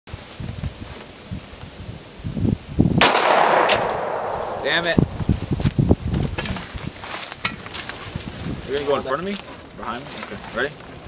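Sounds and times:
gunshot: 0:03.0 - 0:05.7.

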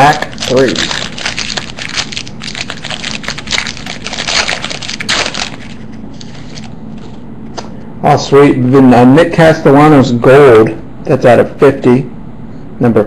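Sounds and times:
wrapper tearing and crinkling: 0:00.0 - 0:07.2
cards rustling: 0:00.0 - 0:07.7.

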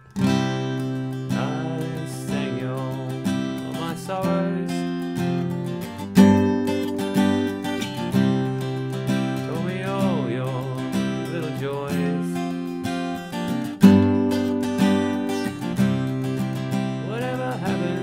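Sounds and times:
acoustic guitar strummed chords: 0:00.0 - 0:18.0.

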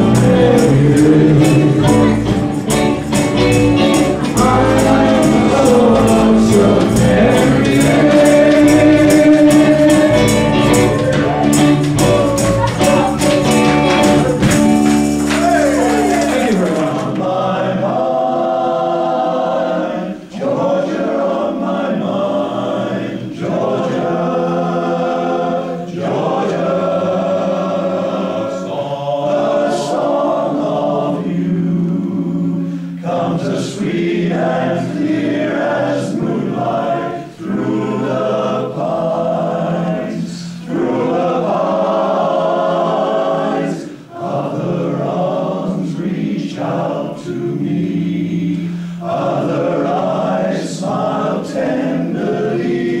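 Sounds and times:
male voice choir singing: 0:00.0 - 0:14.5, 0:15.2 - 0:53.0.

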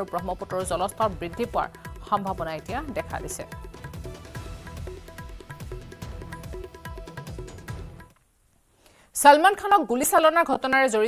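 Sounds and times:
background music with drums: 0:00.0 - 0:08.2.

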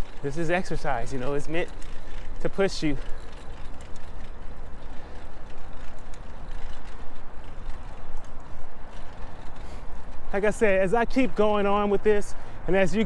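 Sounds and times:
bicycle tyre noise: 0:00.0 - 0:13.0
faint ticking from bicycle: 0:00.0 - 0:13.0.

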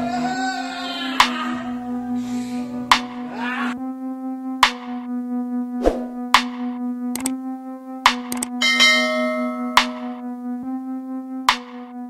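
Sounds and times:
electronic music with steady beat: 0:01.2 - 0:12.0
bell chime: 0:08.6 - 0:10.2.

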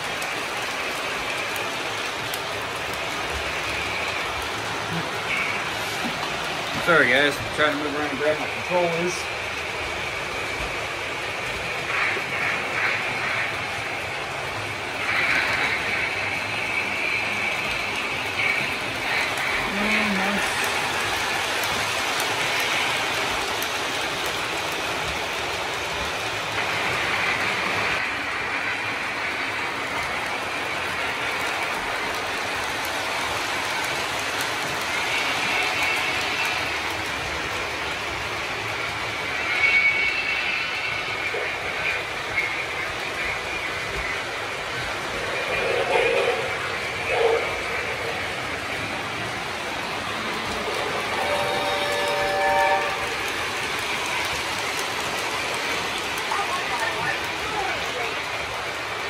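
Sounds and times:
model train wheels rolling on track: 0:00.0 - 0:59.0.

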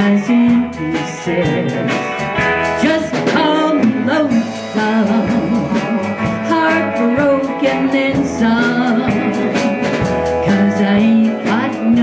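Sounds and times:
country band playing: 0:00.0 - 0:12.0
woman singing: 0:00.0 - 0:12.0.

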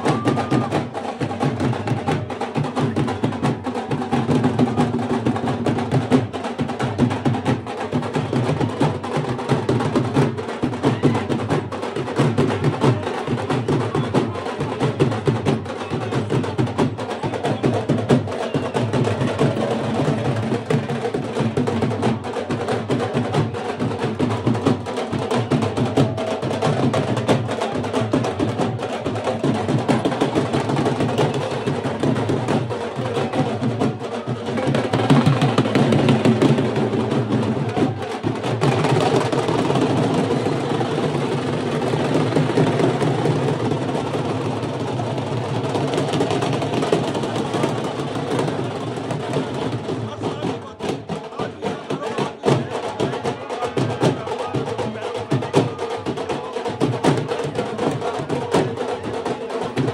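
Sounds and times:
dhol drums beating: 0:00.0 - 0:59.9.

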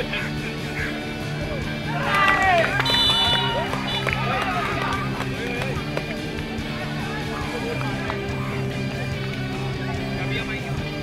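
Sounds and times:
background rock music: 0:00.0 - 0:11.0
players shouting and cheering: 0:00.0 - 0:11.0.

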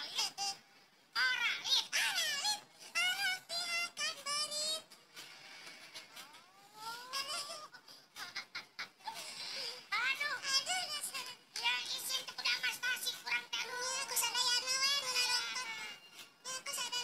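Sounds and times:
cartoonish voice crying: 0:06.5 - 0:09.2.

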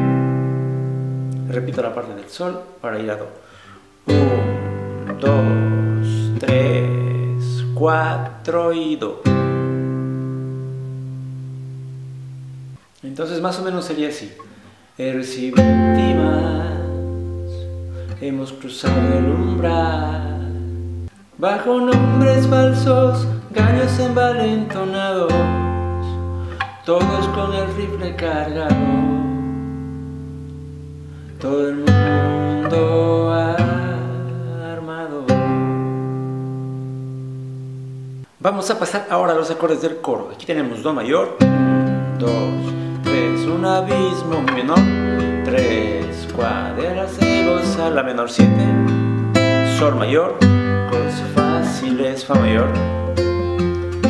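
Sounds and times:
nylon-string guitar chord ringing: 0:04.1 - 0:07.8, 0:15.6 - 0:18.2, 0:21.9 - 0:31.3, 0:41.4 - 0:54.0.

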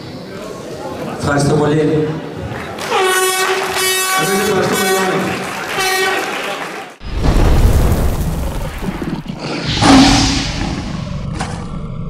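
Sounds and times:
lion-like roar: 0:08.7 - 0:12.0.

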